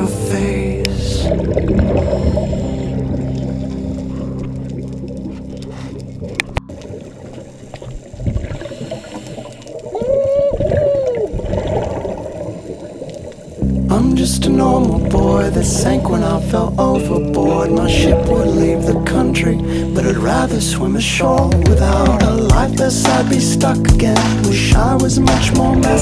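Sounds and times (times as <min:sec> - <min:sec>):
music sustained low chord: 0:00.0 - 0:07.9, 0:13.6 - 0:21.2
watery bubbling: 0:00.0 - 0:26.0
whale-like call: 0:08.6 - 0:11.5.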